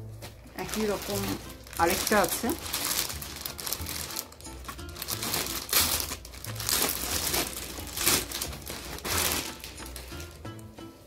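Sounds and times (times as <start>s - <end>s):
plastic bag crinkling: 0.5s - 10.4s.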